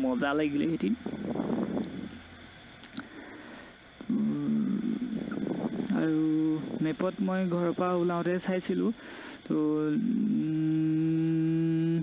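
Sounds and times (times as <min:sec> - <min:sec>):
man holding long vowel: 0:04.0 - 0:07.1, 0:09.5 - 0:12.0.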